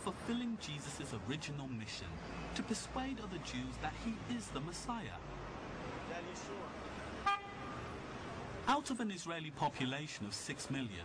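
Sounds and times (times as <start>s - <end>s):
street traffic hum: 0.0s - 11.0s
car horn toot: 7.2s - 7.8s.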